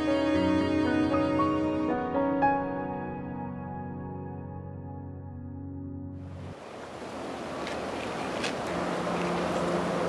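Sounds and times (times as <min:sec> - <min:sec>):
steady outdoor hiss: 0:00.0 - 0:02.2, 0:06.2 - 0:10.0.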